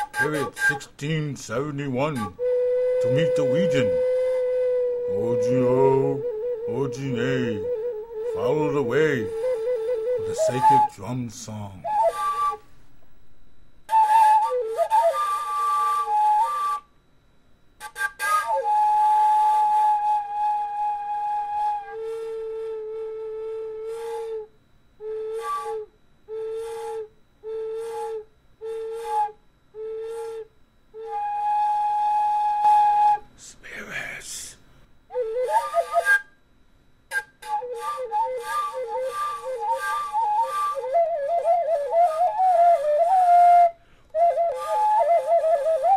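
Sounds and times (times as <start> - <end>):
flute playing slow melody: 0.0 - 0.9, 1.6 - 17.0, 17.8 - 33.3, 35.1 - 36.5, 37.1 - 45.9.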